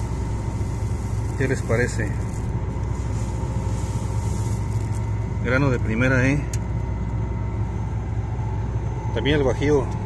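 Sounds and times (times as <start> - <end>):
combine harvester low drone: 0.0 - 10.0.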